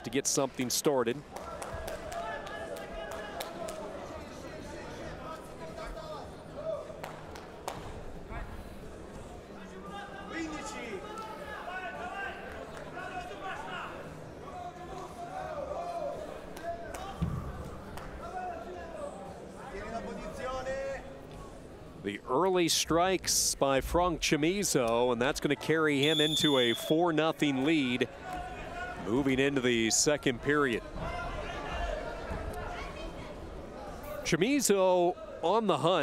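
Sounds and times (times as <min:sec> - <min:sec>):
voices calling out in hall: 0:25.8 - 0:29.9.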